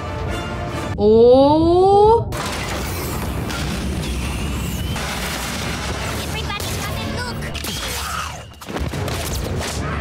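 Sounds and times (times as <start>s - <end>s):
orchestral score: 0.0s - 1.0s
rapid blaster fire: 2.4s - 7.9s.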